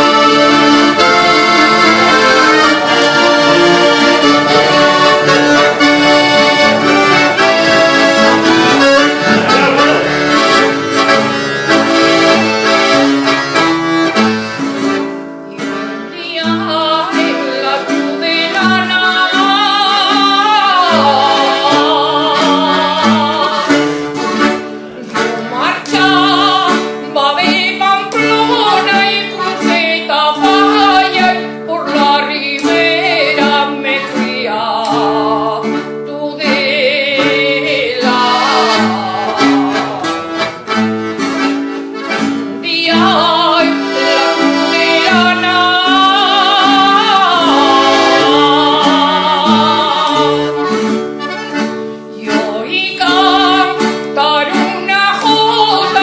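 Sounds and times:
accordion chords: 0.0s - 56.0s
guitar: 0.0s - 56.0s
woman singing: 15.5s - 23.9s, 25.1s - 40.4s, 42.6s - 50.6s, 52.1s - 56.0s.

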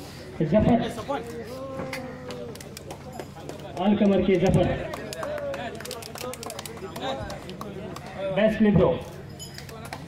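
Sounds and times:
crowd murmur: 0.0s - 10.0s
man's voice over loudspeaker: 0.4s - 1.1s, 3.8s - 4.9s, 8.2s - 9.1s.

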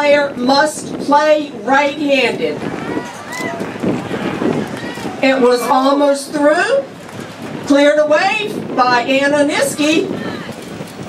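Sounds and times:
faint crowd voices: 0.0s - 10.9s.

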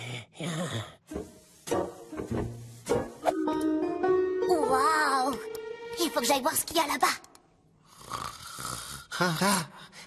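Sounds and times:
cartoon character snoring: 7.8s - 9.6s.

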